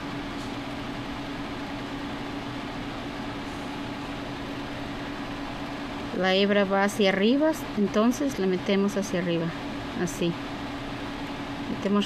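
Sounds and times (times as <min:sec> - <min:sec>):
machine hum with low tone: 0:00.0 - 0:12.0.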